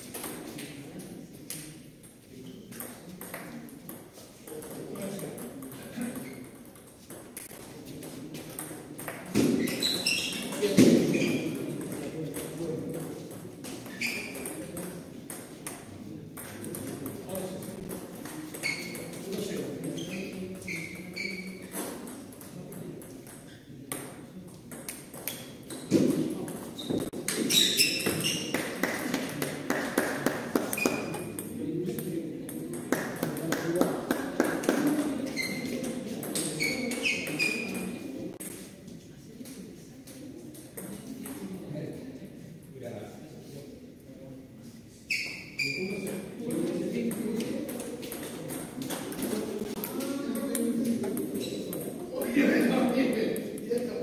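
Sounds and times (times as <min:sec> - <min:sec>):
murmur of voices: 0:00.0 - 0:54.0.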